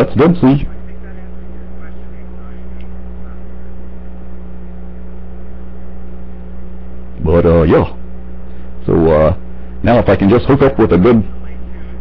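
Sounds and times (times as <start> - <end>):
electrical mains hum: 0.0 - 12.0
microphone hiss: 0.0 - 12.0.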